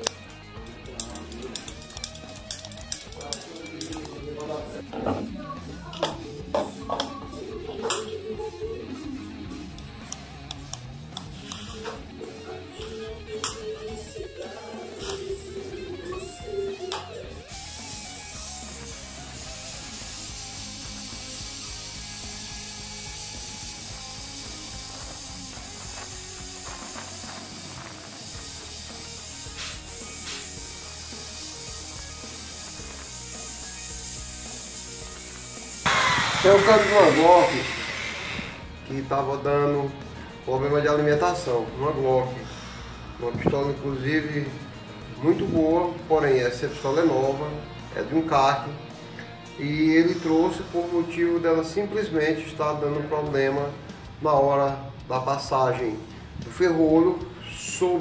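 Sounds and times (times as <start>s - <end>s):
background music: 0.0s - 58.0s
steady hiss: 17.6s - 38.6s.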